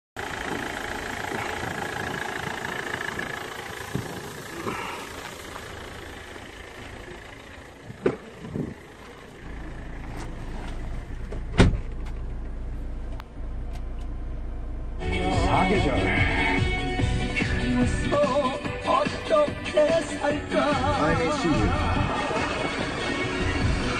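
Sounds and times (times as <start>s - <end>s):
diesel engine idling: 0.2s - 23.9s
car door thud: 8.0s - 8.7s, 11.3s - 12.2s.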